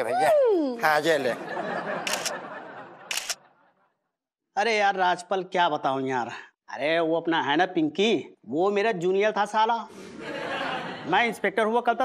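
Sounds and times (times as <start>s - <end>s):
phone camera shutter clicks: 2.0s - 2.4s, 3.1s - 3.4s.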